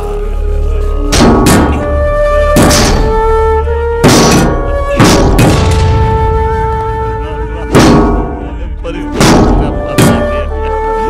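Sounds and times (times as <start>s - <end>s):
dramatic film music: 0.0s - 11.0s
heavy thuds: 2.5s - 10.4s.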